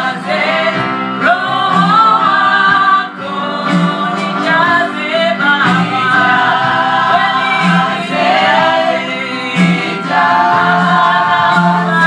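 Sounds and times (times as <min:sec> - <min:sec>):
gospel choir singing: 0:00.0 - 0:12.0
steady beat: 0:05.6 - 0:12.0.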